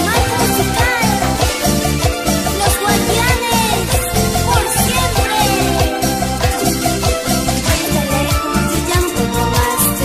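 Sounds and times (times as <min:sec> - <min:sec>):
band music with bass and keyboard: 0:00.0 - 0:10.0.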